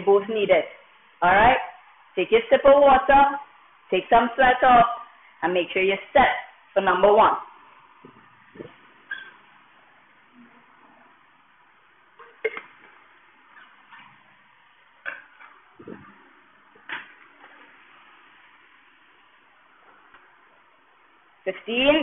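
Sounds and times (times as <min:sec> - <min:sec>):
faint room hiss: 0:00.0 - 0:22.0.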